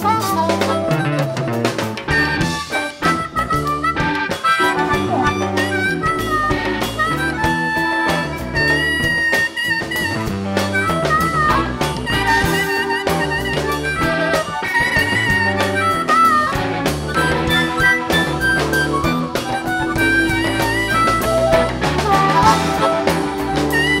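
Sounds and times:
drum kit: 0:00.0 - 0:24.0
electric bass: 0:00.0 - 0:24.0
lead guitar bending notes: 0:00.0 - 0:24.0.

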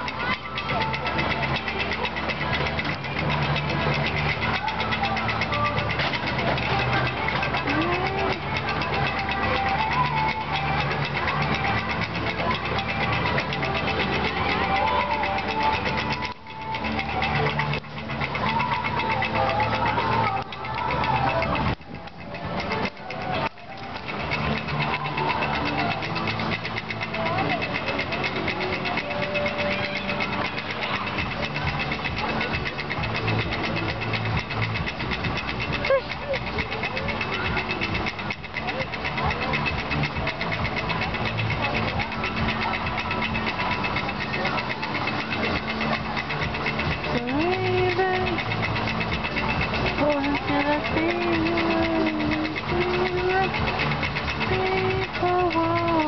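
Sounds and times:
faint voices: 0:00.0 - 0:56.0
roller coaster chain lift clatter: 0:00.0 - 0:56.0.

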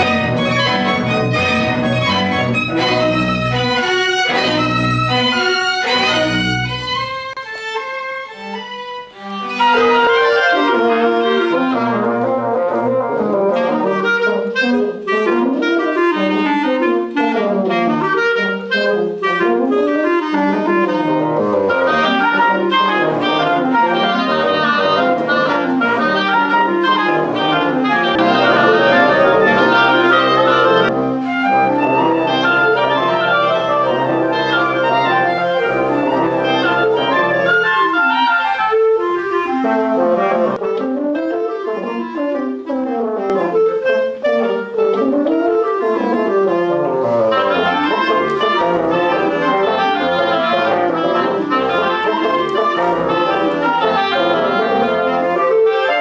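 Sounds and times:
bassoon: 0:00.0 - 0:56.0
clarinet: 0:00.0 - 0:56.0
flute: 0:00.0 - 0:56.0
oboe: 0:00.0 - 0:56.0
french horn: 0:09.2 - 0:56.0
sustained low notes: 0:28.1 - 0:31.0.

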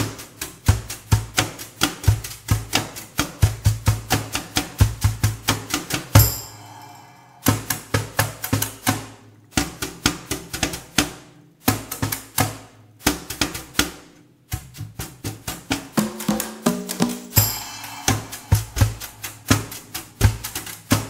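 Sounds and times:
congas and hand percussion: 0:00.0 - 0:21.0.

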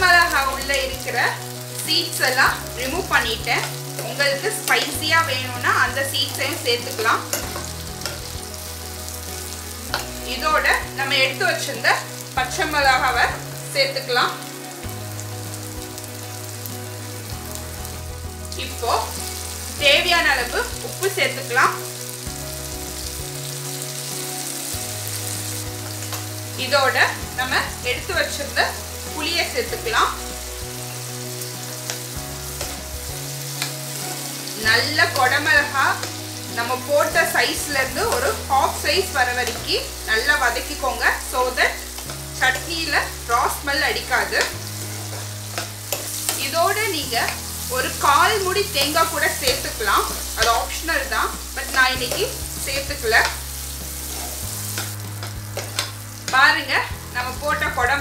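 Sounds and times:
vegetables sizzling in oil: 0:00.0 - 0:58.0
metal spatula scraping pan: 0:54.0 - 0:56.4.

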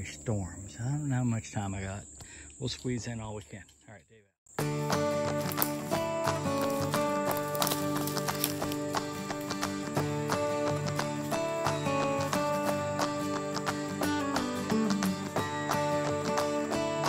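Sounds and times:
background music with plucked pulse: 0:04.6 - 0:17.0.

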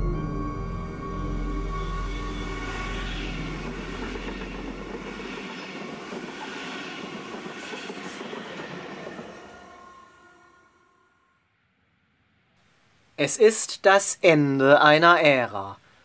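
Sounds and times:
deep electric hum: 0:00.0 - 0:05.3
train wheels rushing on rails: 0:02.1 - 0:11.0.

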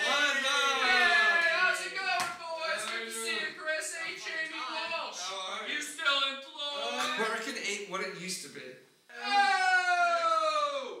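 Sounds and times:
man's drawn-out vocal aaah: 0:09.1 - 0:11.0.

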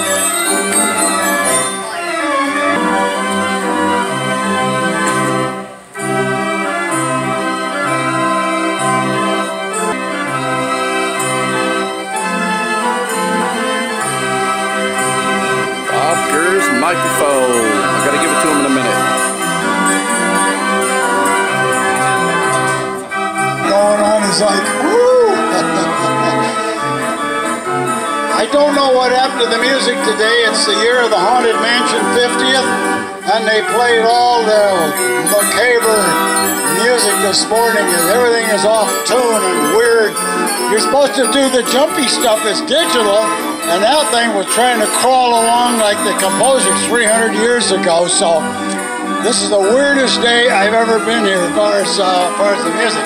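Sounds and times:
off-tune band organ music: 0:00.0 - 0:53.0.

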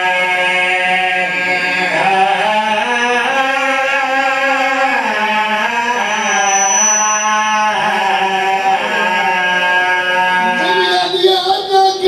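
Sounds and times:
man chanting a lament: 0:00.0 - 0:06.5, 0:07.4 - 0:12.0.

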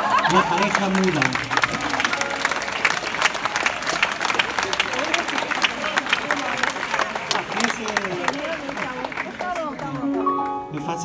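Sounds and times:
audience applauding: 0:00.0 - 0:11.0
crowd voices: 0:00.0 - 0:11.0.

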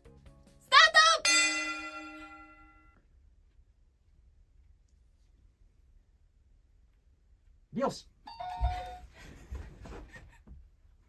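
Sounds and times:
bell chime ringing: 0:01.2 - 0:03.0.

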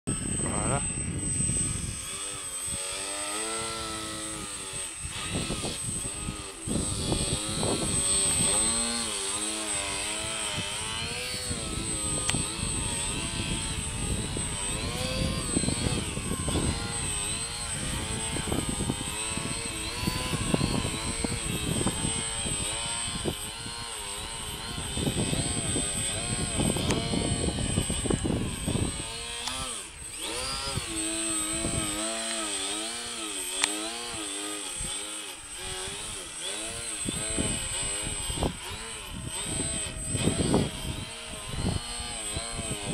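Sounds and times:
model airplane motor and propeller: 0:00.1 - 0:42.9.

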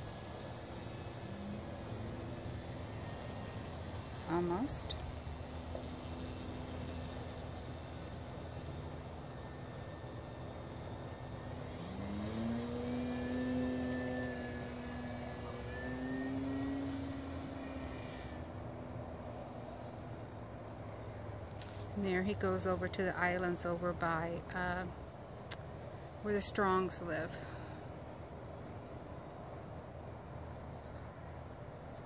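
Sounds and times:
model plane motor droning: 0:00.0 - 0:24.9.

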